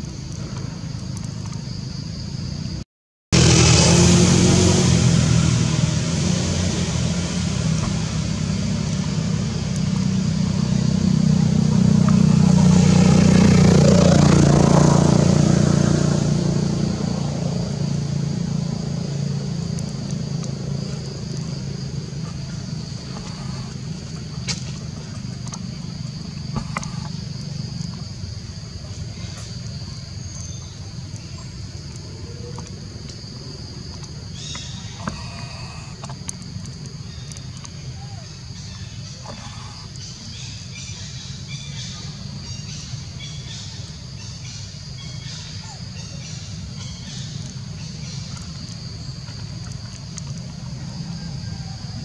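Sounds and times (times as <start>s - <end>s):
vehicle engine rumble passing by: 3.4s - 52.0s.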